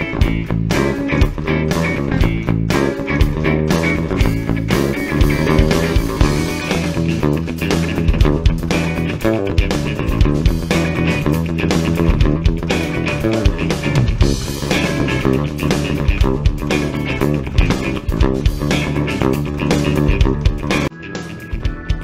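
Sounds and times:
bass guitar line: 0.0 - 22.0
rock backing track: 0.0 - 22.0.

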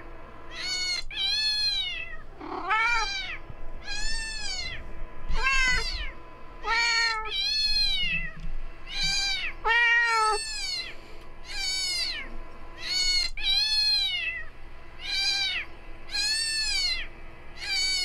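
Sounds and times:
cat meowing deeply: 0.5 - 8.4, 9.0 - 10.9
recorded cat meows from phone: 5.3 - 8.4, 9.0 - 10.9.

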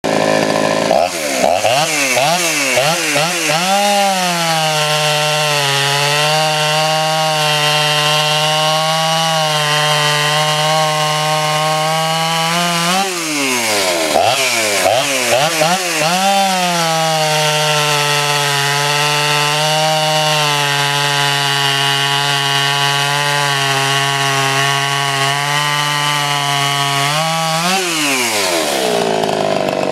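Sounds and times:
chainsaw running and revving: 0.0 - 29.9.

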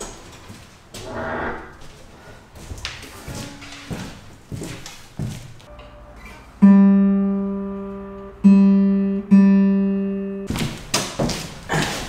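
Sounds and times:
boot footsteps on metal floor: 2.6 - 5.7, 10.5 - 12.0
guitar strings ringing faintly: 5.7 - 10.5.

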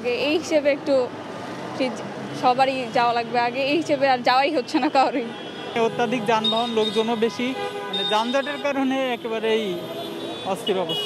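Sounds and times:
street traffic noise: 0.0 - 11.0
man talking: 5.8 - 11.0.

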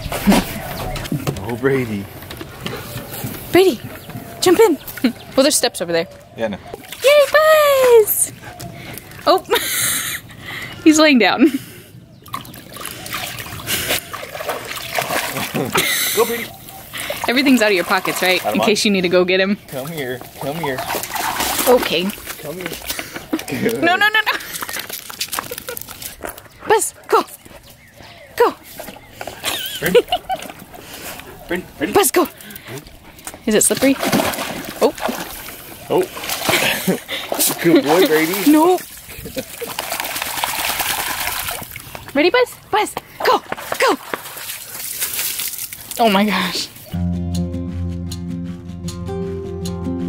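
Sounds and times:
dogs splashing in shallow water: 0.0 - 9.3, 12.2 - 46.9
water sloshing and trickling: 0.0 - 9.4, 12.1 - 26.6, 28.6 - 46.9.

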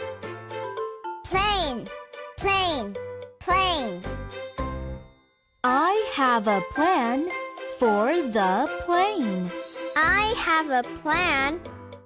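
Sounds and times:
children's phonics chant: 1.3 - 4.2, 5.6 - 11.7.

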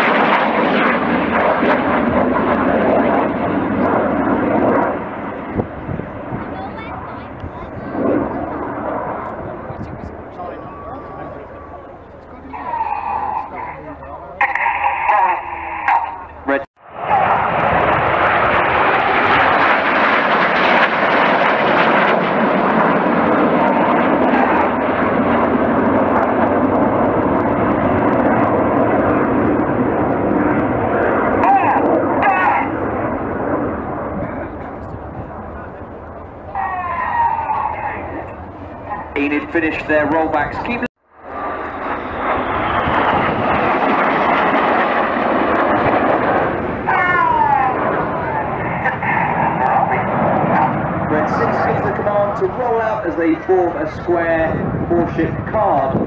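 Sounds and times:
jets passing overhead: 0.0 - 56.0.

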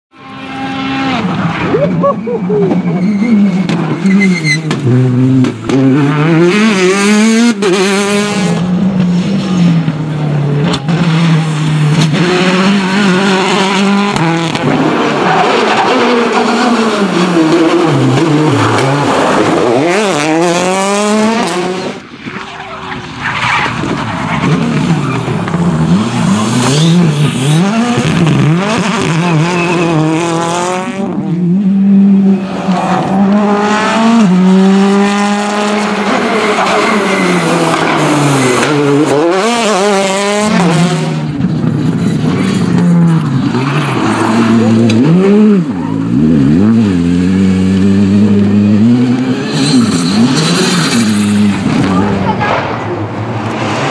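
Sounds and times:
rally car engines revving: 0.1 - 53.9.

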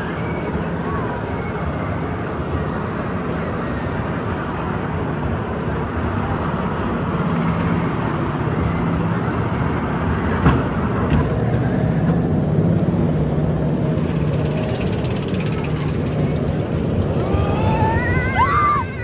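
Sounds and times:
coaster car rumbling on track: 0.0 - 19.0.

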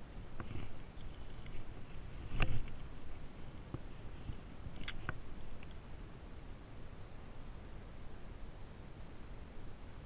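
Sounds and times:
fishing rod and reel handling: 4.7 - 5.8.

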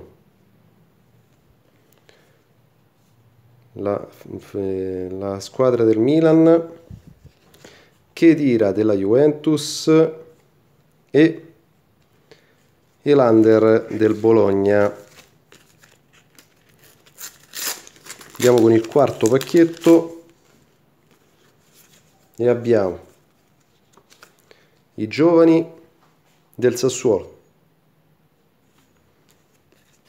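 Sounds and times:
paper stickers rustling: 13.9 - 22.3
foil packet crinkling: 14.7 - 20.4.

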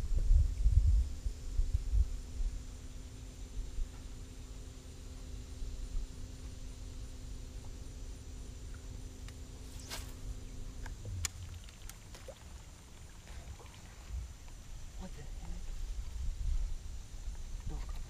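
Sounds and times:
wind rumble on microphone: 0.0 - 4.2, 13.3 - 18.0
trolling motor humming: 2.1 - 18.0
fishing rod swish: 9.8 - 10.2.

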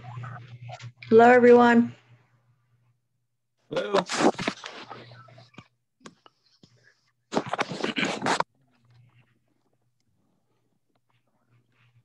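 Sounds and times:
low electrical hum: 0.0 - 7.2.

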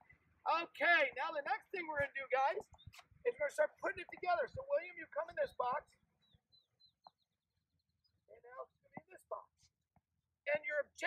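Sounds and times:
bird song: 1.7 - 11.0.

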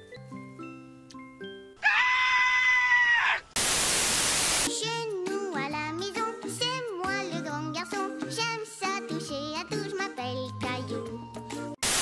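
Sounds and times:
high-pitched scream: 1.8 - 3.5
burst of static: 3.6 - 4.7
music with singing: 4.7 - 11.8.

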